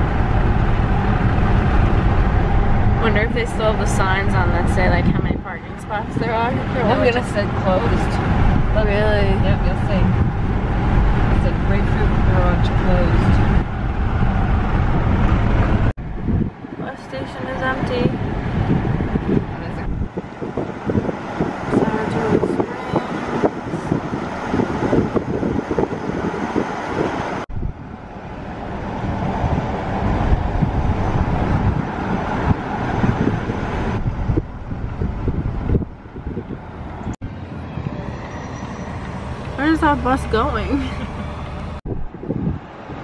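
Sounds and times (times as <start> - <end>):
car road and wind noise: 0.0 - 43.0.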